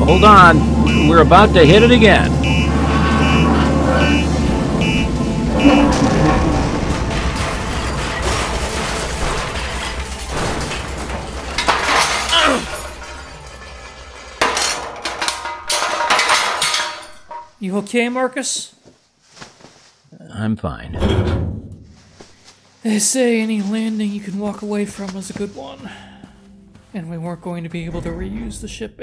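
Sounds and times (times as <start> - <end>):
warning alarm beeping: 0.0 - 8.0
low rumble: 0.0 - 17.5, 27.6 - 29.0
crashing roar: 0.6 - 17.5
breaking clattering impacts: 1.6 - 17.6.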